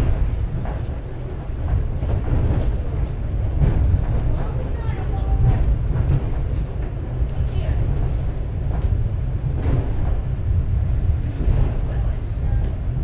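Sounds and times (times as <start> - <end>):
cable car rumbling: 0.0 - 13.0
indistinct passenger voices: 0.0 - 13.0.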